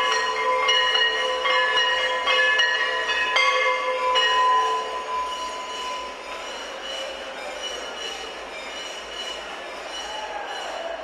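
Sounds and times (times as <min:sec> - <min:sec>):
faint high ringing tones: 0:00.0 - 0:10.3
dense din of bells ringing: 0:00.0 - 0:11.0.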